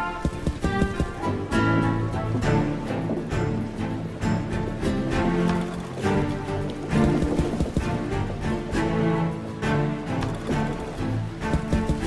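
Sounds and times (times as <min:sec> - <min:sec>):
slot game music: 0:00.0 - 0:12.0.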